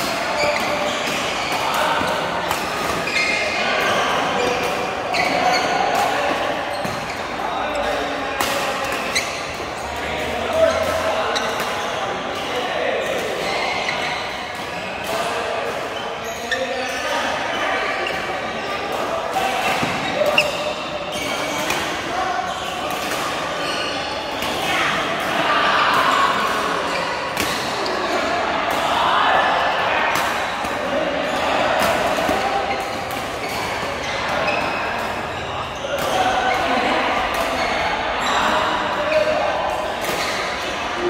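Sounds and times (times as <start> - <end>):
players' voices: 0.0 - 41.0.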